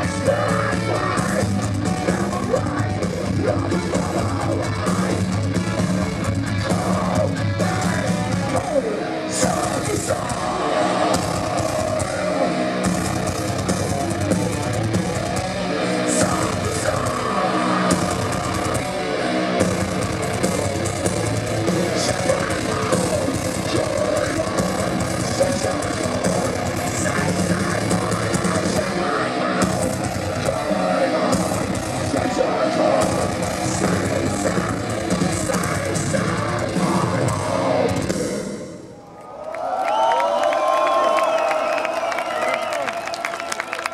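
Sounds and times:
metal band playing live: 0.0 - 38.8.

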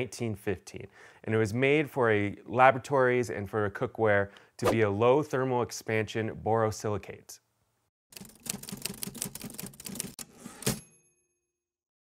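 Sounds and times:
typewriter keystrokes clattering: 8.2 - 10.7
typewriter bell ringing: 10.5 - 11.2.

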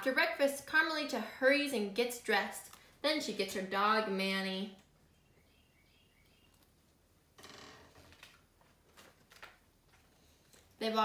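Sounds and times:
book pages rustling: 8.0 - 10.7.

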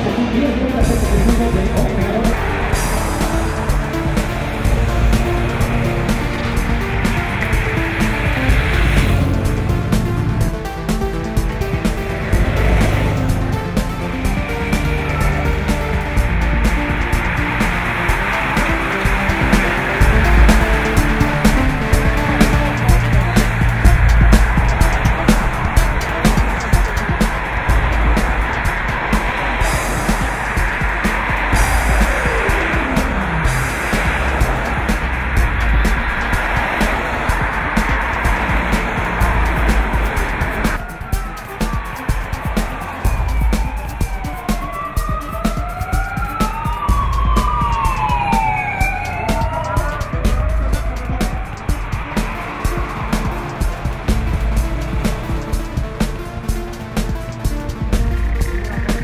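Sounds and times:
cars passing on road: 0.0 - 59.0
sirens wailing: 0.0 - 59.0.

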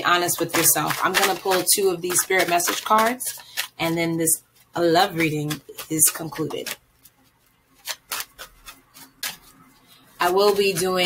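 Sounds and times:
cards snapping while shuffled: 0.4 - 3.8, 5.2 - 7.2, 7.8 - 9.6.

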